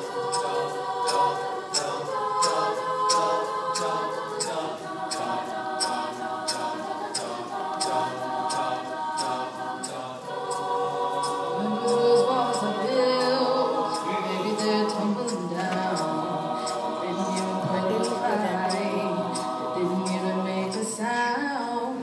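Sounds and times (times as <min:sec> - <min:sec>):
soft percussive ticks: 0:00.0 - 0:21.0
a cappella group singing harmonies: 0:00.0 - 0:22.0.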